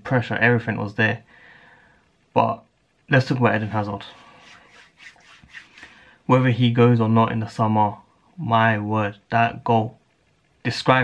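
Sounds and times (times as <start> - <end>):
soft scratchy scrapes: 3.4 - 6.0
clothing rustling: 3.5 - 6.0.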